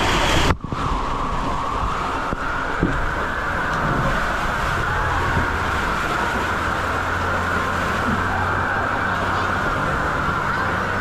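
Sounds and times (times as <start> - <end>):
water rushing down a channel: 0.0 - 11.0.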